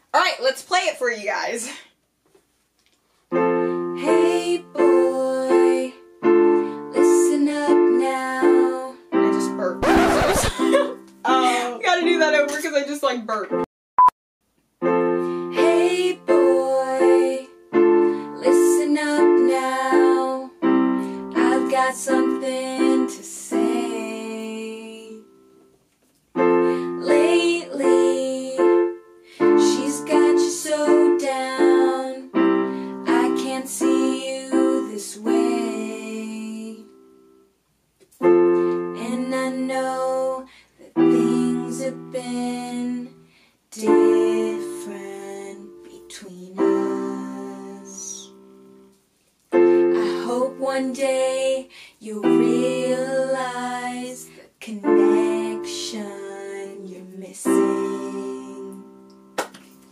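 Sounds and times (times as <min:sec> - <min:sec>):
electronic keyboard piano chords: 0:03.4 - 0:13.7, 0:14.8 - 0:24.2, 0:38.2 - 0:39.2, 0:49.6 - 0:50.6
girls singing a pop ballad: 0:03.8 - 0:11.7, 0:15.4 - 0:25.5, 0:26.4 - 0:37.1, 0:38.6 - 0:48.6, 0:49.6 - 0:59.1.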